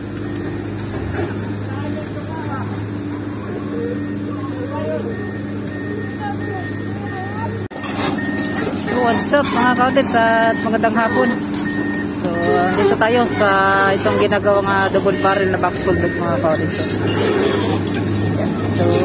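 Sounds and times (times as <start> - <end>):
construction machinery engine running: 0.0 - 19.0
workers' voices: 0.0 - 19.0.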